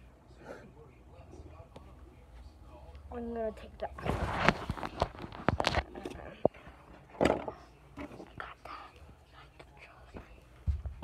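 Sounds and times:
fabric rustling on microphone: 4.0s - 5.9s.

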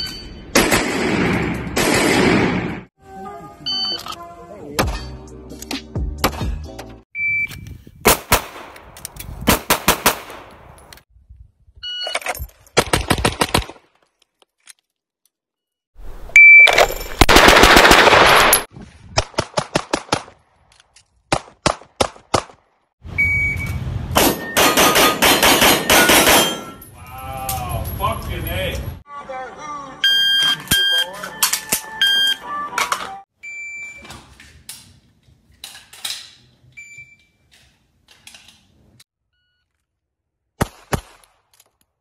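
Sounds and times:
pistol shots: 9.5s - 10.5s, 24.2s - 26.7s.

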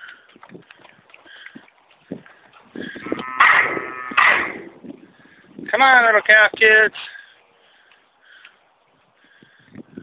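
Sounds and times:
cattle mooing: 2.9s - 4.7s.

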